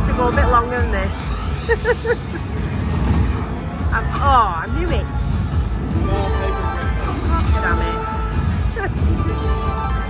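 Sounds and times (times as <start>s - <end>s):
slot machine low rumble: 0.0s - 10.0s
slot machine chiming notes: 5.9s - 10.0s.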